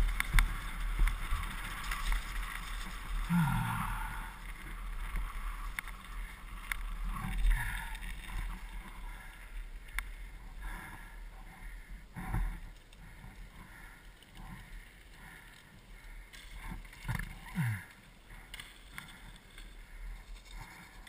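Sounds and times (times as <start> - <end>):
bike rattling over stones: 0.0 - 11.0, 12.1 - 21.0
wind and tyres rumbling: 0.0 - 21.0.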